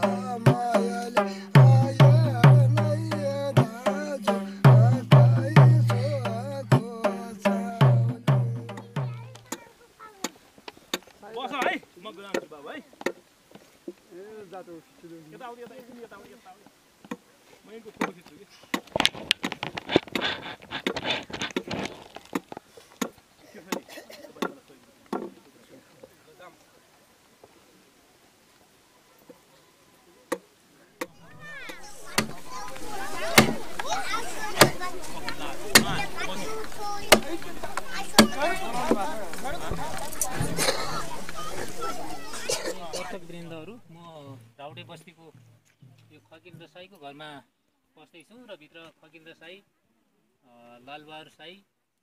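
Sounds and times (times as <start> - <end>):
people's voices: 0.0 - 10.4, 29.1 - 45.0
sharp chopping knock: 33.3 - 33.6, 34.6 - 34.8, 35.7 - 36.0, 38.2 - 38.4
axe chopping wood: 33.3 - 33.9, 34.6 - 34.8, 35.7 - 36.0, 37.1 - 37.5, 38.2 - 39.0.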